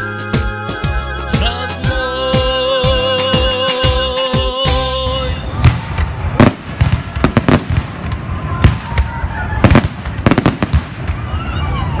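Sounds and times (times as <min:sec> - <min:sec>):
fireworks bangs: 0:05.2 - 0:12.0.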